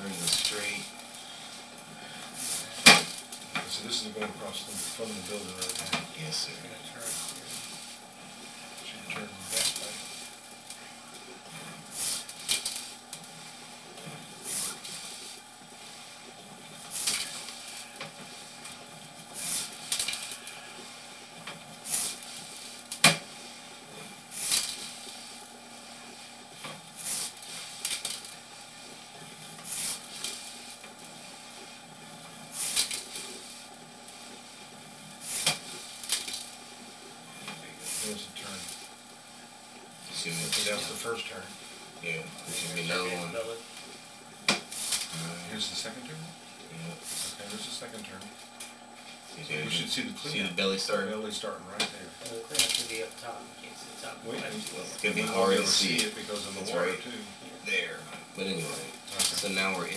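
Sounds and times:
faint electrical hum: 0.0 - 59.9.

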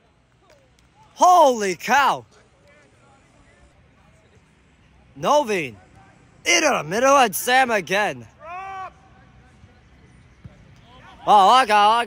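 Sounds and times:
faint field noise: 0.0 - 12.0.

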